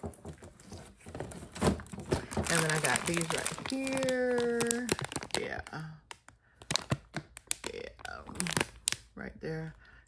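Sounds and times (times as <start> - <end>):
plastic packets crinkling: 2.1 - 9.1.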